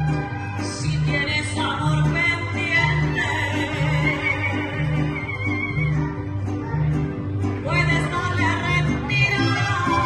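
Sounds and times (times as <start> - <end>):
bass guitar notes: 0.0 - 10.0
guitars and harp: 0.0 - 10.0
violins melody: 0.0 - 10.0.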